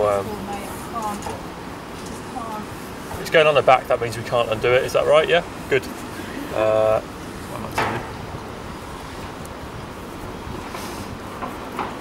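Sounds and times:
wind blowing across microphone: 0:04.2 - 0:12.0.

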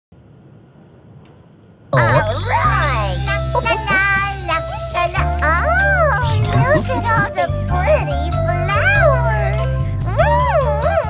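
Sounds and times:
person speaking loudly: 0:02.0 - 0:11.0.

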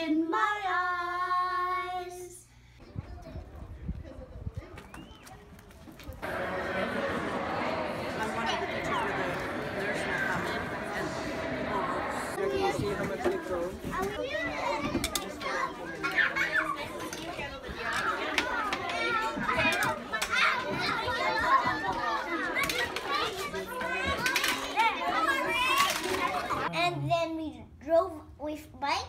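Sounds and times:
children talking and calling out: 0:01.9 - 0:29.0.

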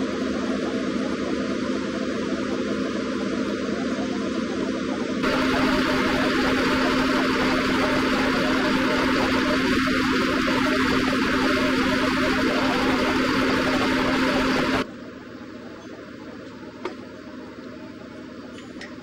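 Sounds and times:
machine hum with hiss: 0:00.0 - 0:19.0.

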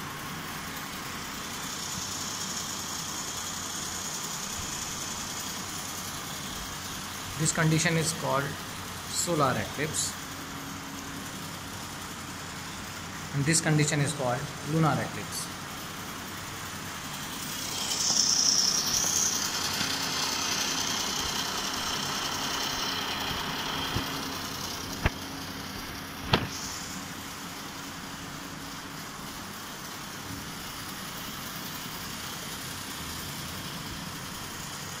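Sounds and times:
plastic gears whirring: 0:14.8 - 0:27.1.

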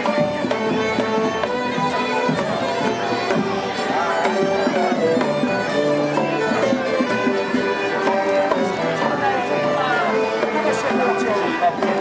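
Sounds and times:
street band playing folk tune: 0:00.0 - 0:12.0.

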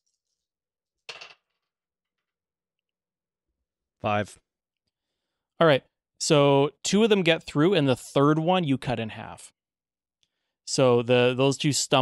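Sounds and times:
dice clattering into wooden tray: 0:01.1 - 0:01.6.

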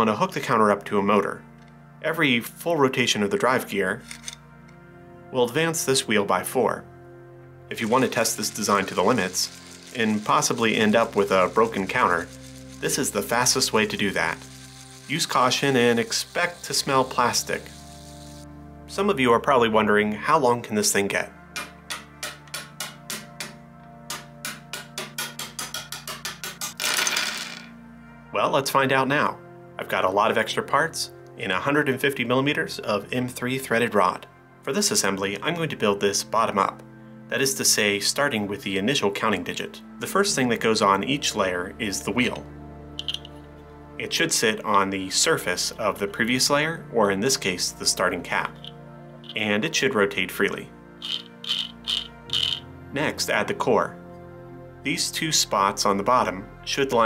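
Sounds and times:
soft background music: 0:00.0 - 0:57.0.

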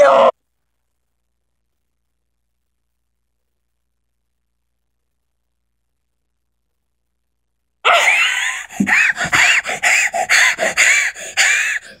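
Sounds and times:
boy screaming: 0:07.9 - 0:08.5.

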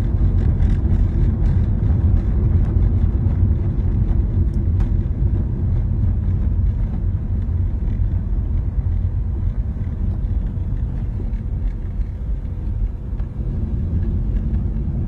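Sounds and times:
car cabin road and engine rumble: 0:00.0 - 0:15.0.

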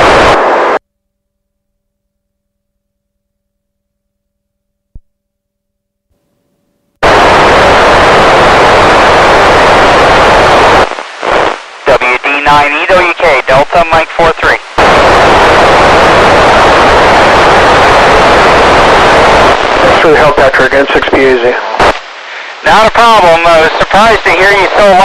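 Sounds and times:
radio receiver hiss: 0:00.0 - 0:00.8, 0:07.0 - 0:25.0
weak radio voice: 0:07.0 - 0:25.0.

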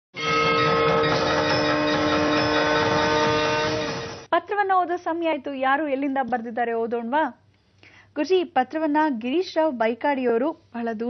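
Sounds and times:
droning tone with overtones: 0:00.2 - 0:04.3.

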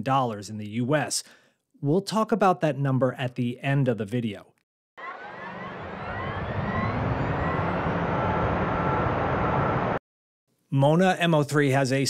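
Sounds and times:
car accelerating: 0:05.0 - 0:10.0.

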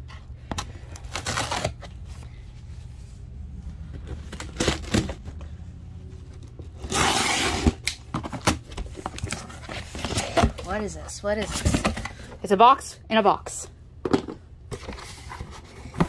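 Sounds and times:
cardboard boxes being handled: 0:08.1 - 0:12.3, 0:14.7 - 0:16.0.

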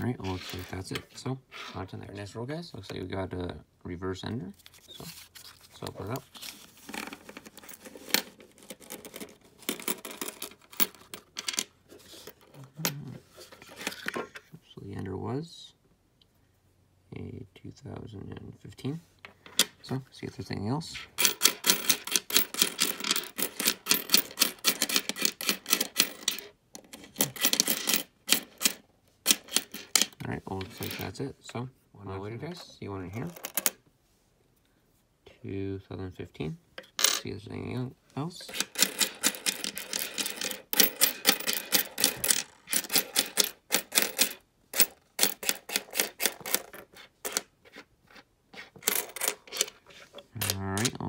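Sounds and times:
coins clinking on a tabletop: 0:06.9 - 0:13.0, 0:21.2 - 0:31.1, 0:33.2 - 0:33.8, 0:37.0 - 0:37.2, 0:38.5 - 0:47.8, 0:48.6 - 0:51.0.

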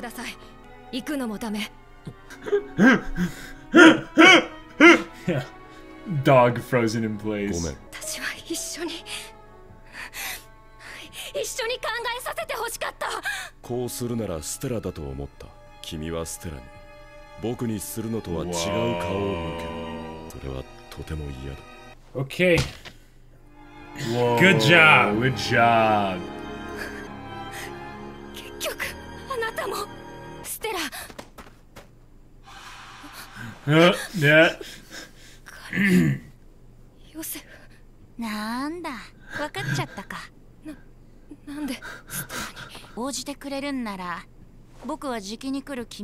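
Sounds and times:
soft background music: 0:00.0 - 0:22.3, 0:23.4 - 0:30.6
man laughing loudly: 0:02.3 - 0:05.5
woman speaking tearfully: 0:18.5 - 0:20.0, 0:30.5 - 0:31.0, 0:38.2 - 0:40.3, 0:41.3 - 0:41.9.

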